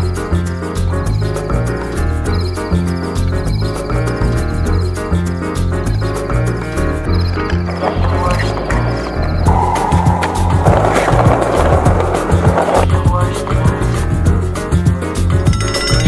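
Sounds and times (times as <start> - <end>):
skateboard wheels rolling on tiles: 7.2 - 14.1
skateboard clacks: 7.4 - 13.9.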